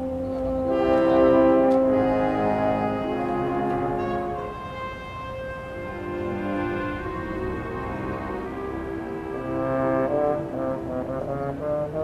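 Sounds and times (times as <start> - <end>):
concert band accompaniment: 0.0 - 12.0
euphonium melody: 0.0 - 12.0.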